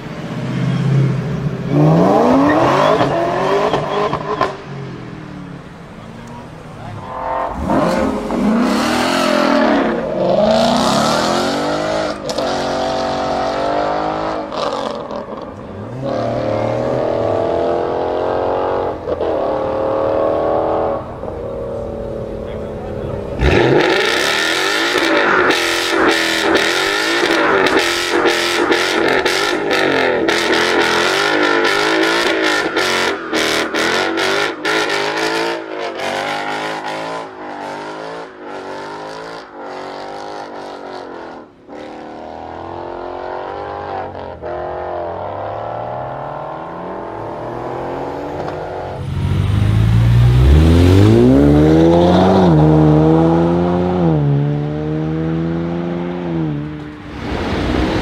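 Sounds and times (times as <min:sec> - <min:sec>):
car engine revving: 0:00.0 - 0:58.0.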